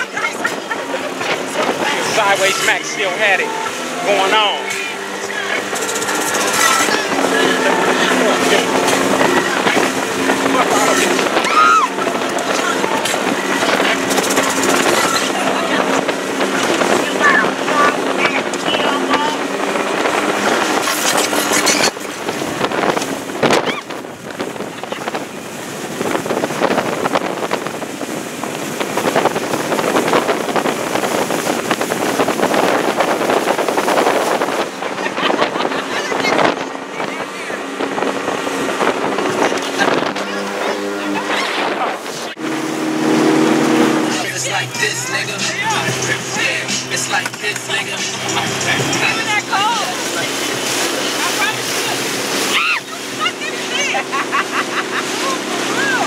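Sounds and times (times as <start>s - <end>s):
speedboat engine hum: 0.0s - 56.0s
wind and water rush: 0.0s - 56.0s.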